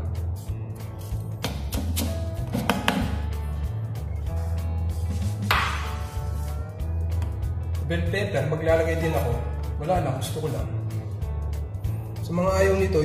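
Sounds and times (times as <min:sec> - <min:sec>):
background music with bass: 0:00.0 - 0:13.0
knife chopping on wooden block: 0:01.4 - 0:03.2.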